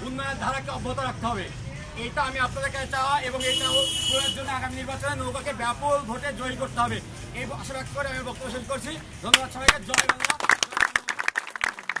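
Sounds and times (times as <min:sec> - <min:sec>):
group clapping hands: 0:09.3 - 0:12.0.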